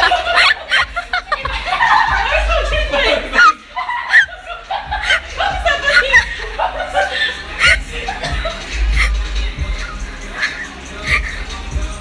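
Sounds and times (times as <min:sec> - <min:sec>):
people laughing and chattering: 0:00.0 - 0:12.0.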